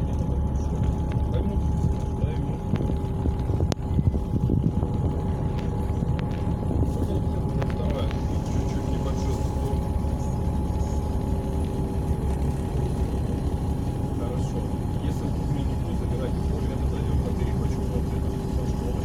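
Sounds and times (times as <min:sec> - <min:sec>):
road and engine rumble: 0:00.0 - 0:19.0.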